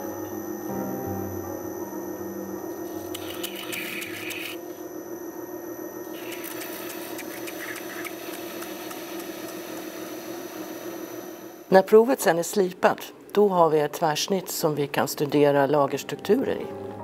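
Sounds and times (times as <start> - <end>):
grinding machine humming: 0.0 - 11.7.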